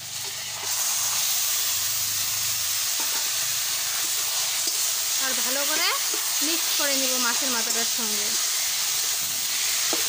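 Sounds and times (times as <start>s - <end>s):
food sizzling in hot oil: 0.0s - 10.0s
metal spatula scraping a wok: 0.1s - 10.0s.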